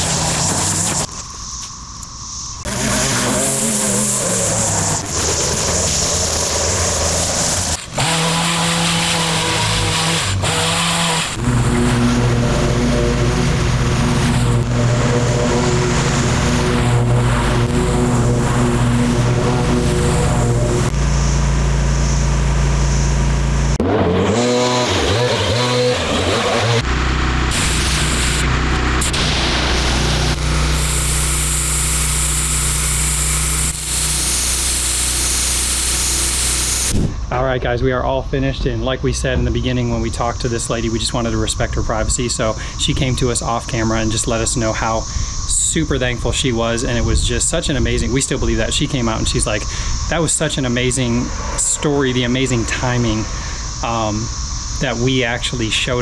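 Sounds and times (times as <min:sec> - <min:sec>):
pressure washer spraying: 0:00.0 - 0:01.1, 0:02.7 - 0:20.9, 0:27.5 - 0:37.1
string trimmer: 0:00.0 - 0:01.2, 0:02.7 - 0:37.2
engine hum: 0:00.0 - 0:56.0.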